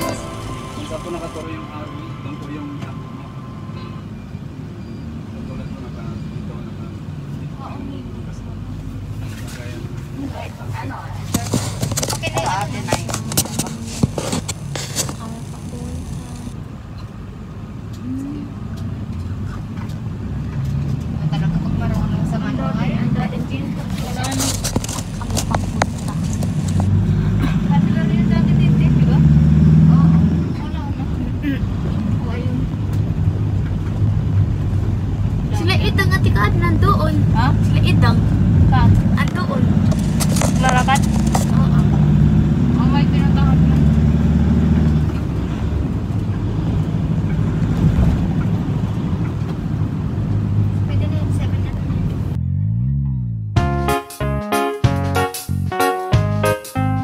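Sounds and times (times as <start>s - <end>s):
voices: 0.0s - 16.6s, 21.1s - 32.7s
road and engine rumble in van: 4.8s - 53.6s.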